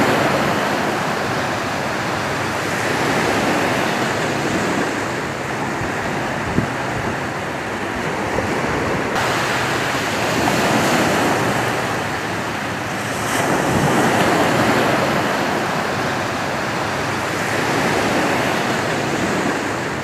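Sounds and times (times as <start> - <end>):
waves washing onto beach: 0.0 - 20.0.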